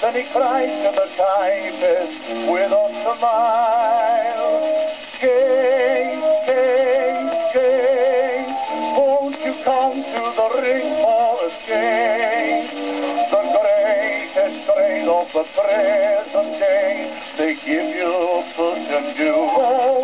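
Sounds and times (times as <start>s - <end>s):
old gramophone song recording: 0.0s - 20.0s.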